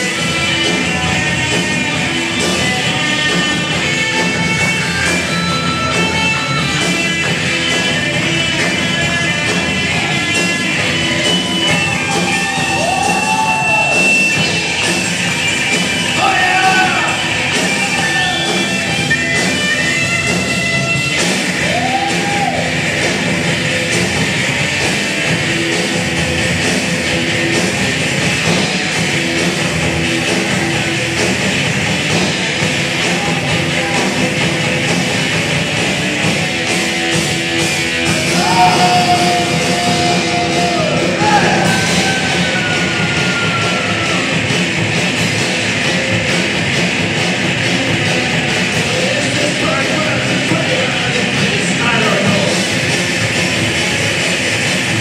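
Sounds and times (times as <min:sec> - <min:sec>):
distorted instrumental rock music: 0:00.0 - 0:55.0
drums: 0:00.0 - 0:55.0
electric guitars: 0:00.0 - 0:55.0
held high guitar note: 0:38.1 - 0:44.5.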